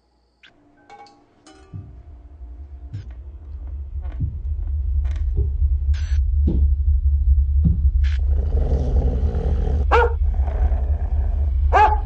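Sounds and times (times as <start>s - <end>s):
deep low rumble: 2.0s - 12.0s
harsh growl-like roar: 8.2s - 12.0s.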